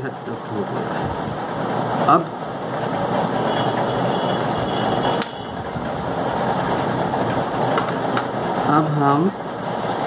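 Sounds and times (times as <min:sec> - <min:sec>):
machine running: 0:00.0 - 0:10.0.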